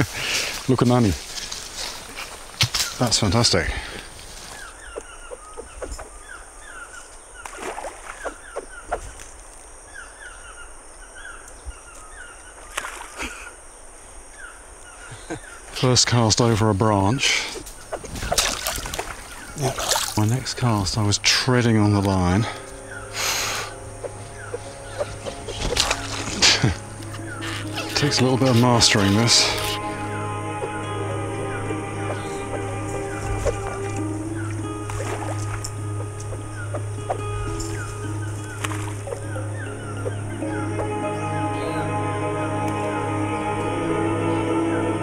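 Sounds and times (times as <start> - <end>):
birds chirping: 0.0 - 45.0
fishing line splashing into water: 7.4 - 9.3, 12.6 - 13.5, 18.1 - 20.3, 25.1 - 28.1, 33.2 - 36.3, 38.4 - 39.3
background music: 20.2 - 45.0.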